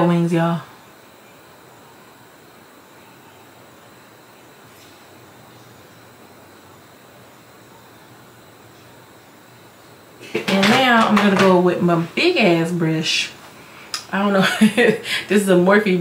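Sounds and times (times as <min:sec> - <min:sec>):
faint recording hiss: 0:00.0 - 0:16.0.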